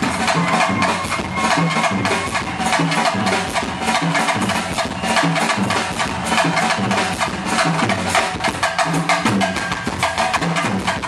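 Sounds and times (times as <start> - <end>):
busy drum kit beat: 0.0 - 11.0
live wedding band playing: 0.0 - 11.0.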